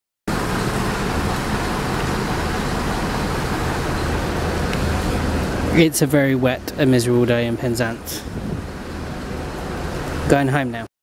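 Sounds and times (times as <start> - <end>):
vehicle passing close: 0.3 - 10.4
traffic on wet road: 0.3 - 10.9.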